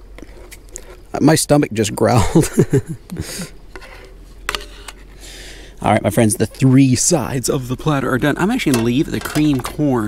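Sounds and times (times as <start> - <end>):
spatula scraping a skillet: 0.2 - 1.1, 3.3 - 5.2.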